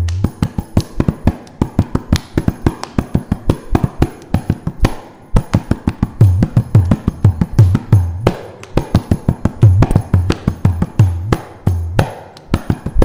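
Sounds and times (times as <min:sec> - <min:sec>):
mridangam fast strokes: 0:00.0 - 0:13.0.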